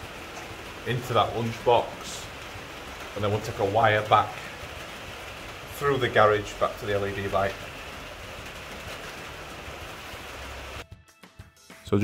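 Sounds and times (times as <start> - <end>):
steady hiss: 0.0 - 10.8.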